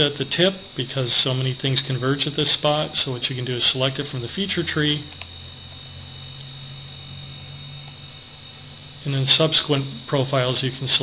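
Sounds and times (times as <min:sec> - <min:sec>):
high-pitched electrical whine: 0:00.0 - 0:11.0
low hum: 0:00.0 - 0:11.0.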